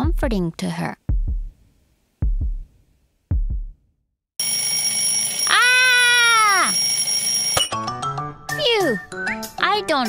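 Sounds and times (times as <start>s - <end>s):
low heartbeat thump: 1.1s - 1.6s, 2.2s - 3.8s
alarm clock bells ringing: 4.4s - 7.9s.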